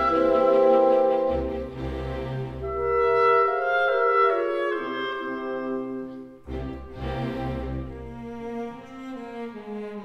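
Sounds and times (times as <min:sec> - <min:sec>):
slow orchestral music: 0:00.0 - 0:10.0.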